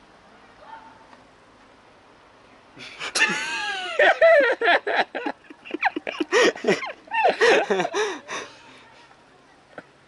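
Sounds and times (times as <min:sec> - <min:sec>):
man laughing in strained bursts: 0:02.8 - 0:08.5.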